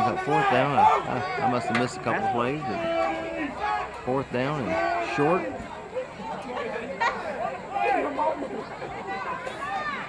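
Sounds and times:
distant voices chattering and calling: 0:00.0 - 0:10.0.

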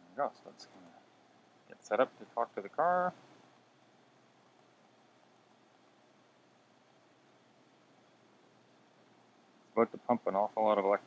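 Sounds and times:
person speaking: 0:00.0 - 0:03.2, 0:09.7 - 0:11.0
faint background hiss: 0:00.0 - 0:11.0.

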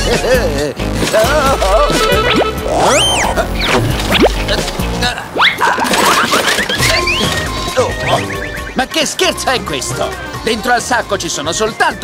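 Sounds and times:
cartoon background music: 0:00.0 - 0:12.0
sliding whistle glides: 0:01.6 - 0:04.3.

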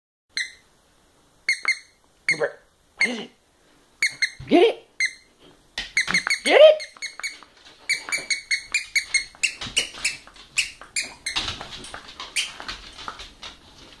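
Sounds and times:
squeaky dog toy squeaking: 0:00.3 - 0:00.7, 0:01.4 - 0:03.3, 0:04.0 - 0:11.6, 0:12.3 - 0:12.6.

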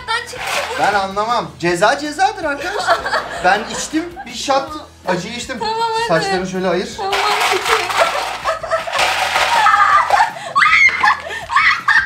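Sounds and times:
ice cubes pouring: 0:00.3 - 0:01.1, 0:07.1 - 0:10.3
young woman laughing: 0:02.6 - 0:04.3, 0:07.8 - 0:12.0.

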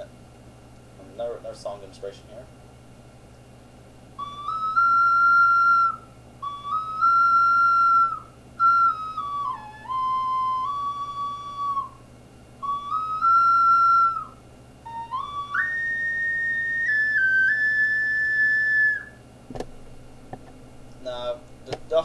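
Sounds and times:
ocarina held notes: 0:04.2 - 0:19.2, 0:21.0 - 0:22.0.

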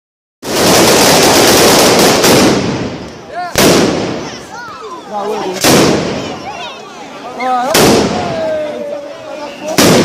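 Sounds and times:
firecrackers crackling: 0:00.4 - 0:06.8, 0:07.6 - 0:08.8, 0:09.4 - 0:10.0.

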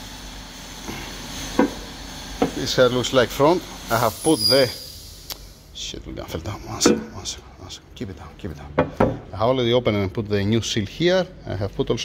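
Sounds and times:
steady low hum: 0:00.6 - 0:09.6
short metal knock: 0:06.8 - 0:07.2.

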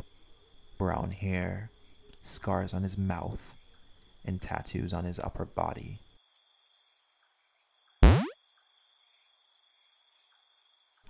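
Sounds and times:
crickets chirping: 0:00.0 - 0:07.9
loud falling sweep hit: 0:08.0 - 0:08.4.

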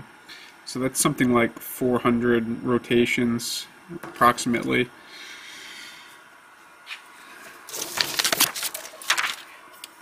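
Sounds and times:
paper rustling: 0:07.7 - 0:09.6.

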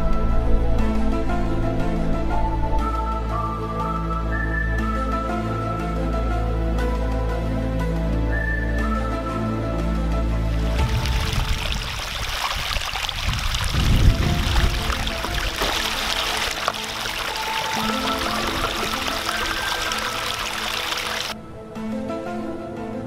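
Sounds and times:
stream water rushing and splashing: 0:10.4 - 0:21.4
bottle plunged and rinsed in water: 0:10.7 - 0:21.3.

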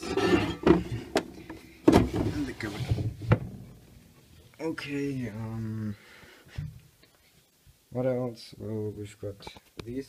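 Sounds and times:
metal part scraping and handling: 0:00.0 - 0:01.6.

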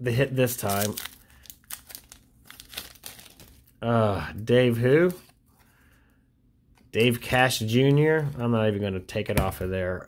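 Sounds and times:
paper wrapper crinkling: 0:00.4 - 0:03.8.

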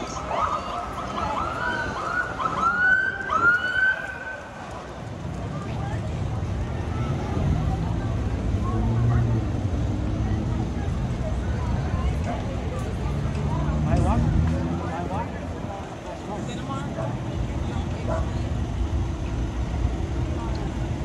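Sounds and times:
passing traffic rumble: 0:00.0 - 0:21.0
police siren whoops: 0:00.2 - 0:04.5.

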